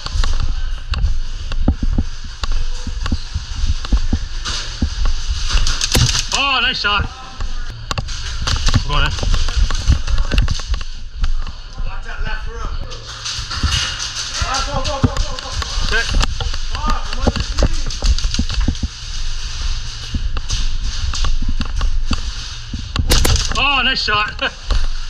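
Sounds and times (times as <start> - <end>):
gear clatter: 0.0 - 7.0, 12.9 - 25.0
footsteps: 0.0 - 25.0
airsoft guns firing: 23.1 - 23.7.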